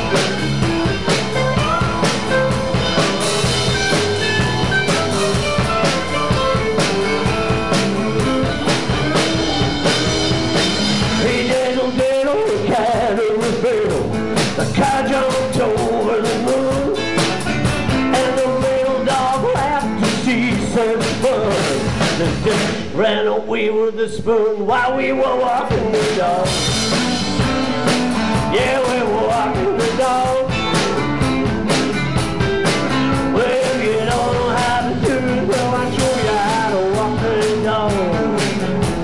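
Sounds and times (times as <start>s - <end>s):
bass guitar: 0.0s - 39.0s
drum kit: 0.0s - 39.0s
electric guitars: 0.0s - 39.0s.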